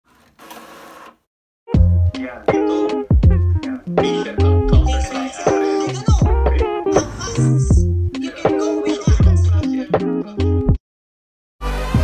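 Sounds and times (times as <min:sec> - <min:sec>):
background music with bass: 0:01.7 - 0:10.8, 0:11.6 - 0:12.0.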